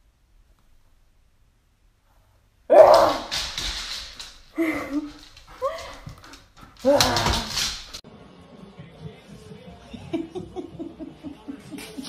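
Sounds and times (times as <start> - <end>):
person laughing: 9.9 - 12.0.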